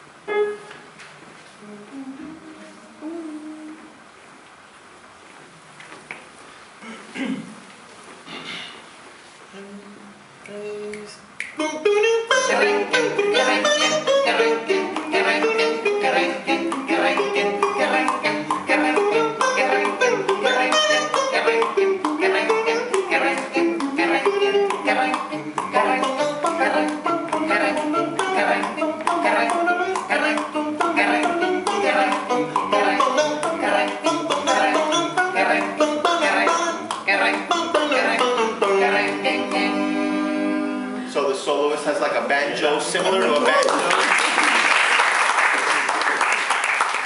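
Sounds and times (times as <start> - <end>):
a cappella group singing: 9.5 - 41.2.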